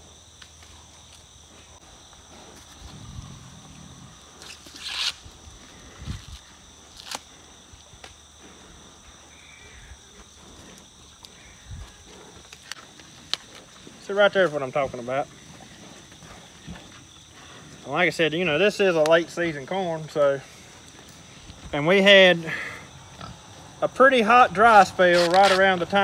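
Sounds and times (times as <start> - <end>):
high insect drone: 0.0 - 26.0
pigs grunting: 2.3 - 4.5, 9.6 - 18.7, 22.3 - 24.0
corn husks tearing: 4.4 - 5.3, 6.1 - 7.3, 25.0 - 25.8
corn ends snapping: 7.0 - 7.3.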